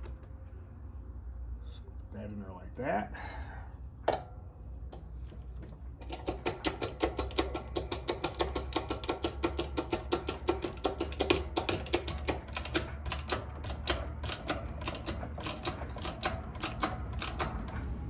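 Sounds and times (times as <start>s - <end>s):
bench press ratcheting clicks: 6.0s - 17.9s.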